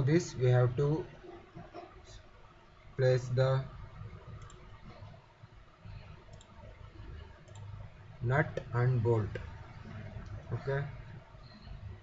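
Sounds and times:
low background noise: 0:00.0 - 0:12.0
computer mouse clicks: 0:04.3 - 0:05.0, 0:06.2 - 0:07.8.

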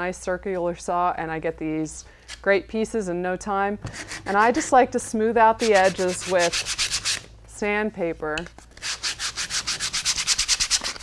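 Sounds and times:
sandpaper rubbing on wood: 0:03.9 - 0:04.8, 0:05.6 - 0:07.2, 0:08.8 - 0:11.0.

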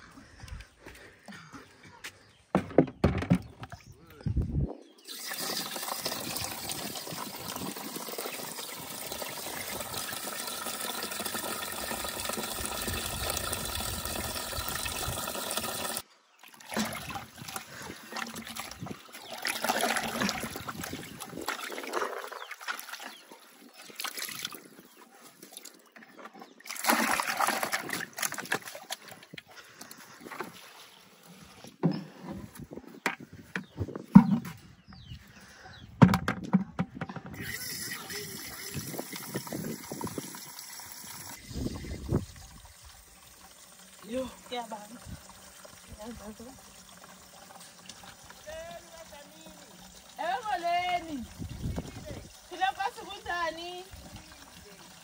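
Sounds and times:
tap water running into bucket: 0:05.0 - 0:24.9, 0:25.5 - 0:30.6, 0:37.0 - 0:55.0
water sloshing and splashing: 0:15.1 - 0:32.6.

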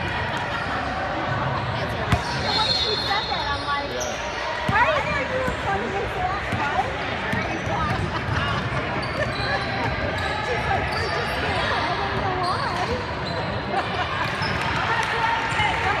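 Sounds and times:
voices calling and talking: 0:00.0 - 0:16.0
sneaker squeaks: 0:02.1 - 0:05.6, 0:07.3 - 0:14.8.

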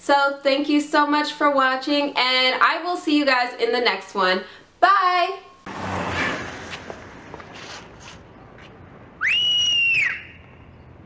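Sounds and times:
loud finger whistle: 0:09.2 - 0:10.6.

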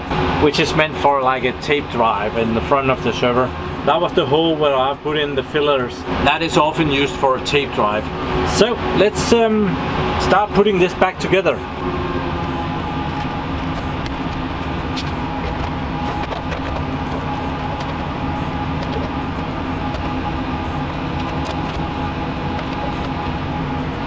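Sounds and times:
steady drone with held tones: 0:00.0 - 0:24.0.

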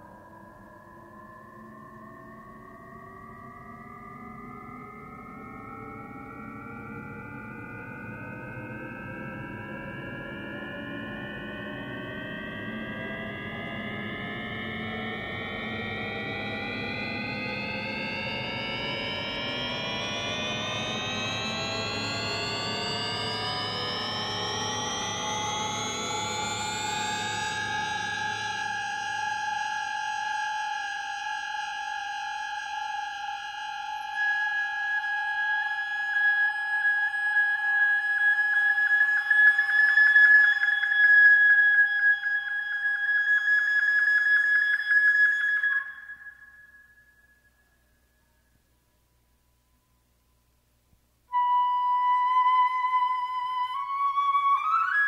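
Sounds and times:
high wavering tone: 0:00.0 - 0:48.4.

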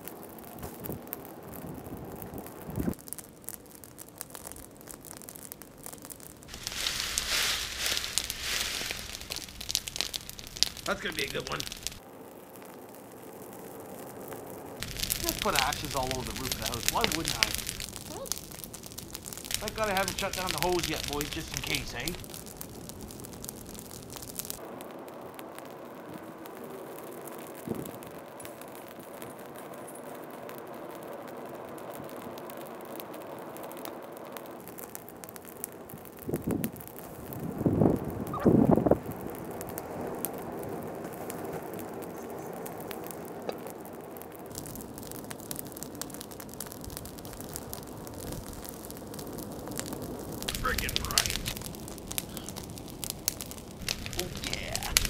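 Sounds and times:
fire crackling and popping: 0:00.0 - 0:55.0.

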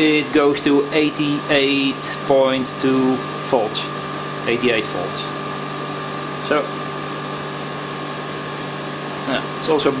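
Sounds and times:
generator rig whirring: 0:00.0 - 0:10.0.

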